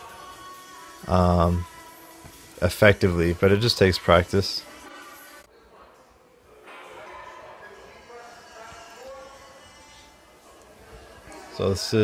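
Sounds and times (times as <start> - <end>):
faint background voices: 2.6 - 12.0.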